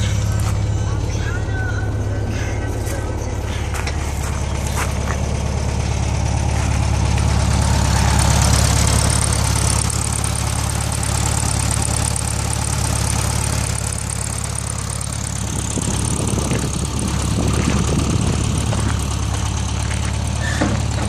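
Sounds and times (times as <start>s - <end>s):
car engine idling: 0.0s - 21.0s.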